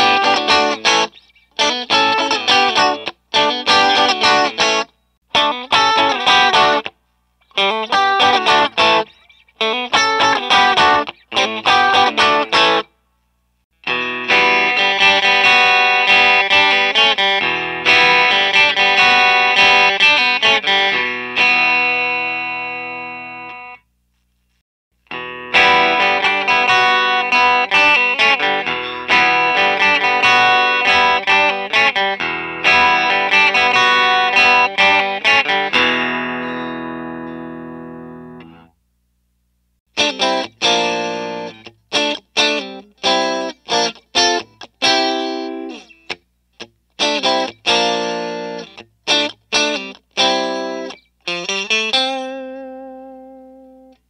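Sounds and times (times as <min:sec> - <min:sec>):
clean electric guitar chords: 0:00.0 - 0:12.9, 0:13.8 - 0:23.8, 0:25.0 - 0:38.7, 0:40.0 - 0:46.2, 0:47.0 - 0:54.0.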